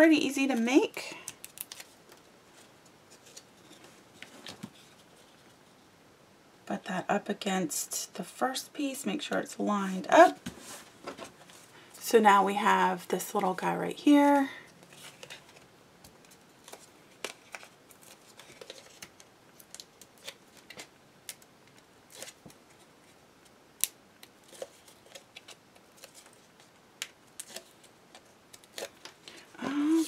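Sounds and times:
tape liner being peeled: 1.3 - 1.9.

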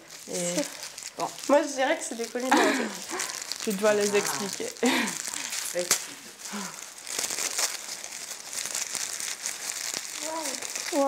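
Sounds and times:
wrapping paper crinkling: 0.0 - 11.0.

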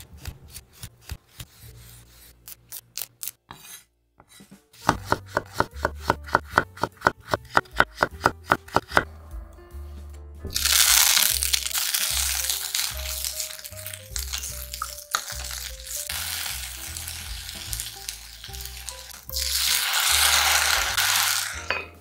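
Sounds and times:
background music: 4.2 - 22.0
vegetables sizzling in oil: 10.5 - 21.7.

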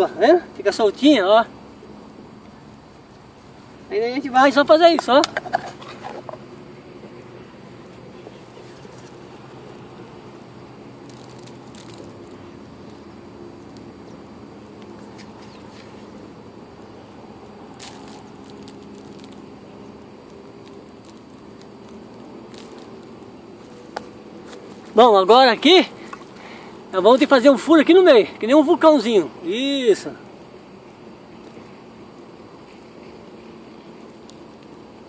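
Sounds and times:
low background hum: 0.0 - 35.0.

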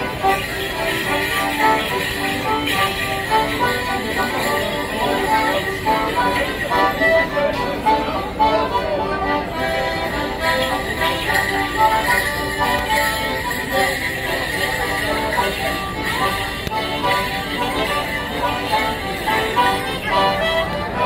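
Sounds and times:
crowd chatter: 0.0 - 21.0
leg bells jingling: 0.0 - 21.0
live folk tune: 0.0 - 21.0.

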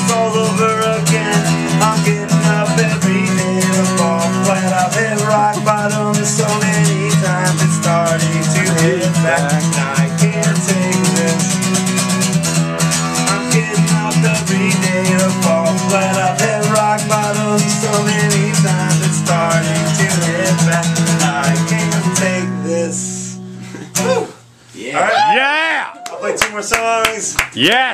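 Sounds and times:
acoustic guitar strumming: 0.0 - 24.5
person calling out: 8.6 - 9.8, 24.0 - 26.0.

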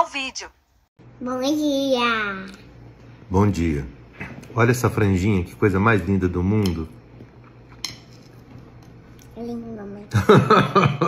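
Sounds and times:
cutlery clinking on a dish: 7.7 - 8.4.

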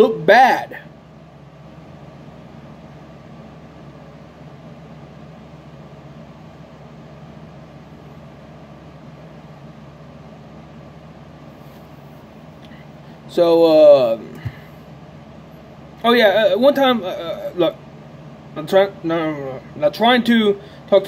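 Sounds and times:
machine hum with hiss: 0.0 - 21.0.

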